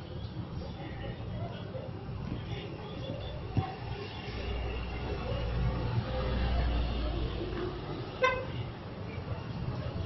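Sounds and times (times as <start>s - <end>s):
vehicle rumbling past: 3.9s - 8.2s.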